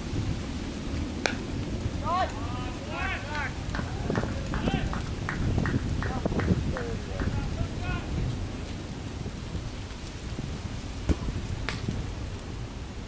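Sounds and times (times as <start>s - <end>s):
wind on microphone: 0.0s - 13.0s
distant players calling: 2.0s - 8.2s.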